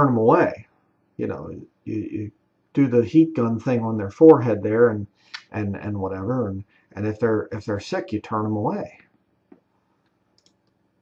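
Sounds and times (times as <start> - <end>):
computer mouse clicks: 9.5 - 10.8.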